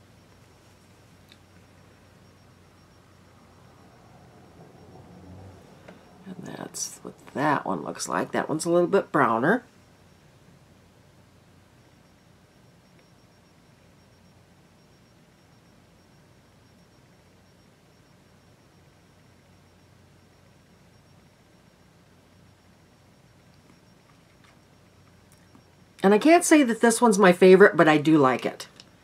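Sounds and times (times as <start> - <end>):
faint low hum: 0.0 - 29.0.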